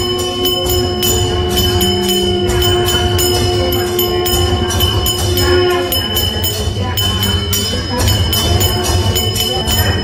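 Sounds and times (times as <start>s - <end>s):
held drone: 0.0s - 10.0s
ringing bell strikes: 0.0s - 10.0s.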